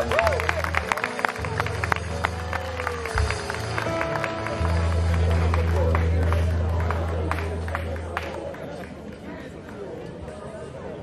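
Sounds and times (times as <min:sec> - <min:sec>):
live band playing: 0:00.0 - 0:08.6
guitar: 0:00.0 - 0:09.3
audience clapping: 0:00.0 - 0:10.0
held low keyboard notes: 0:00.4 - 0:09.0.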